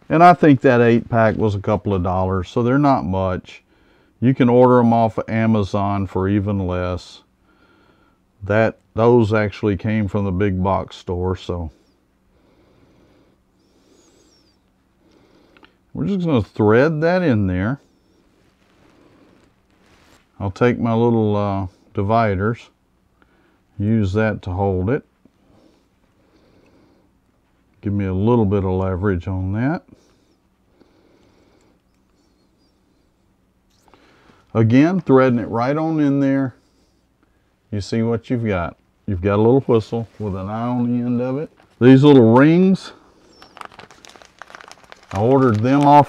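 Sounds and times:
low steady hum: 0:00.0 - 0:46.0
soft breath-like noise: 0:07.3 - 0:08.3, 0:11.7 - 0:15.9, 0:29.9 - 0:34.6, 0:36.3 - 0:37.7
faint handling noise: 0:17.9 - 0:20.7, 0:38.7 - 0:46.0.

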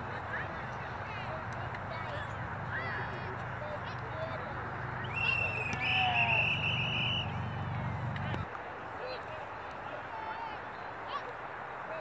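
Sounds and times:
referee's whistle blast: 0:05.0 - 0:07.4.

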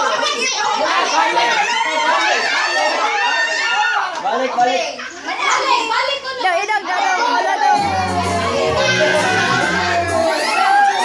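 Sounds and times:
group of people chattering: 0:00.0 - 0:11.0.

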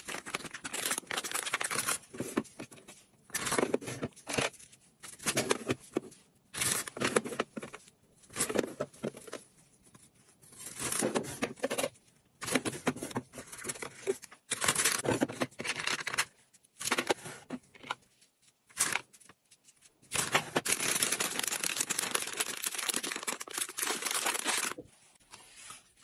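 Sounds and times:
paper bag rustling and crinkling: 0:00.0 - 0:02.5, 0:20.2 - 0:26.0.

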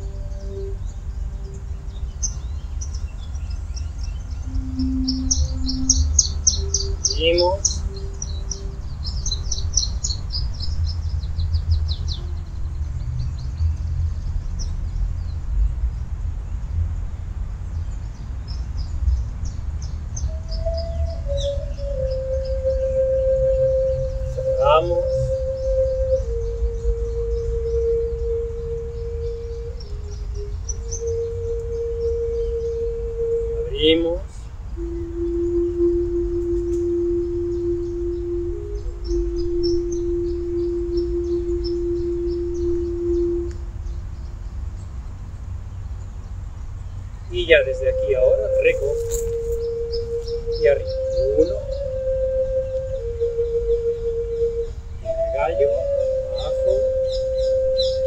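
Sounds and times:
slow background music: 0:00.0 - 0:15.2, 0:19.8 - 0:44.3, 0:47.3 - 0:58.0
birds chirping: 0:00.0 - 0:58.0
steady low rumble: 0:00.0 - 0:58.0.

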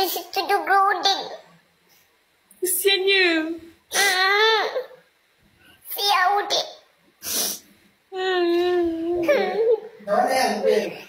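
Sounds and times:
high-pitched child-like whining cry: 0:03.9 - 0:05.0.

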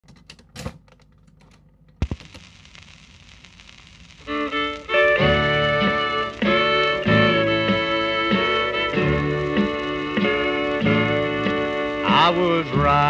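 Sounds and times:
record changer clicks and clatter: 0:00.0 - 0:03.0
record surface hiss: 0:00.1 - 0:13.0
country band music from speaker: 0:04.3 - 0:13.0.

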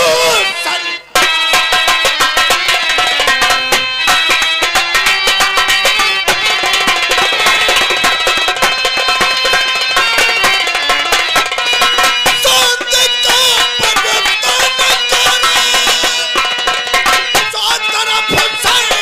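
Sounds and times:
held instrumental tones: 0:00.0 - 0:19.0
rapid hand-drum strokes: 0:02.0 - 0:19.0.

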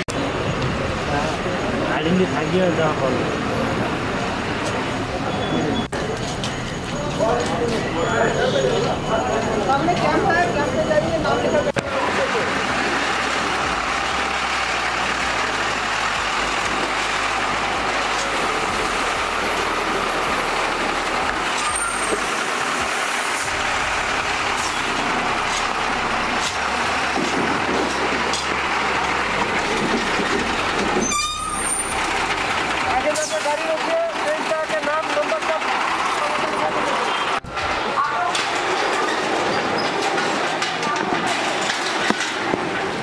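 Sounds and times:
trucks driving past: 0:00.0 - 0:43.0.

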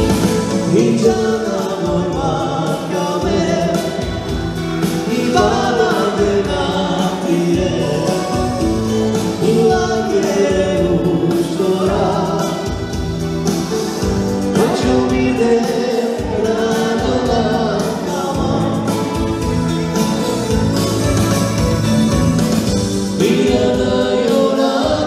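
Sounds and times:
live band playing: 0:00.0 - 0:25.0
person singing: 0:00.0 - 0:25.0.

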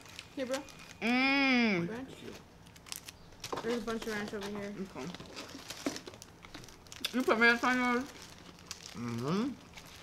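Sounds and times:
paper wrappers crinkling: 0:00.0 - 0:01.3, 0:01.9 - 0:10.0.

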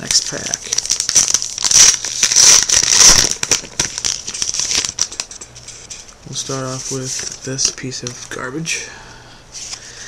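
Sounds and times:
wrapper crinkling: 0:00.0 - 0:08.4.

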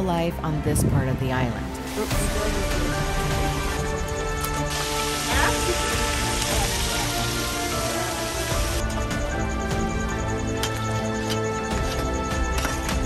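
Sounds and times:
background music: 0:00.0 - 0:13.0
fish sizzling in hot oil: 0:03.4 - 0:08.9.

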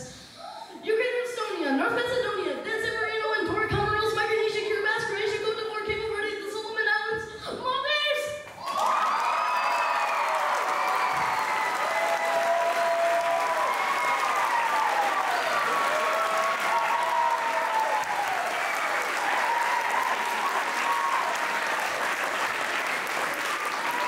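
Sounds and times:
audience applauding: 0:08.6 - 0:24.0
people cheering and whooping: 0:08.6 - 0:24.0.

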